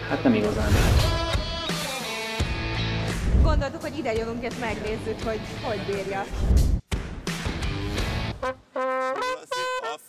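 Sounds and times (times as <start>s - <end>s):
trumpet held notes: 8.4s - 10.0s.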